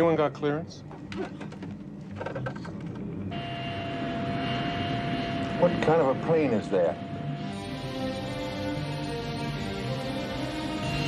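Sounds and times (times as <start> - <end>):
low hum: 2.6 - 11.0
jet engine rush and whine: 3.2 - 11.0.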